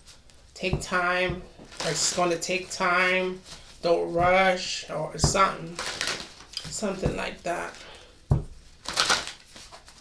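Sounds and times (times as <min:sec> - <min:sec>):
dull thump: 0:00.6 - 0:01.7, 0:05.2 - 0:05.6, 0:06.8 - 0:07.3, 0:08.3 - 0:08.6.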